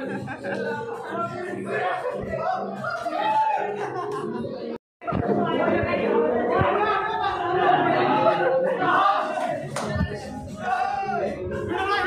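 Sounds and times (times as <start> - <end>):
students chattering and calling out: 0.0 - 12.0.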